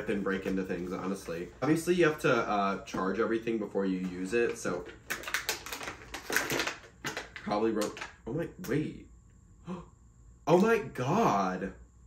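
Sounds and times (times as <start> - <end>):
cardboard packaging crackling: 4.2 - 8.2.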